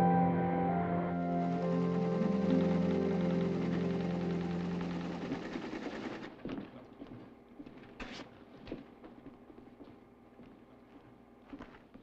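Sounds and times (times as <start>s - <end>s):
background music: 0.0s - 6.1s.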